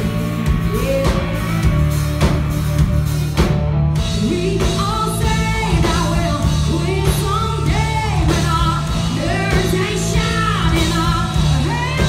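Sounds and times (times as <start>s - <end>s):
bass guitar: 0.0s - 12.0s
drum kit beat: 0.0s - 12.0s
electric guitar: 0.0s - 12.0s
woman singing: 4.2s - 12.0s.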